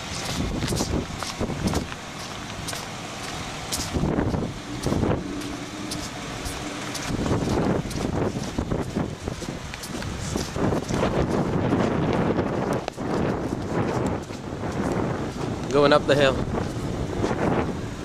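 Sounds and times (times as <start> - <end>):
car moving slowly: 0.0 - 18.0
wind buffeting microphone: 0.0 - 18.0.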